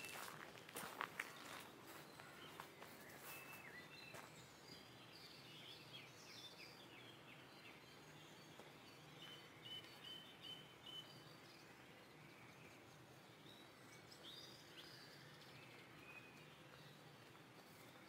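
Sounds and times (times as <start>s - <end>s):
faint birdsong chirps: 0.0s - 18.0s.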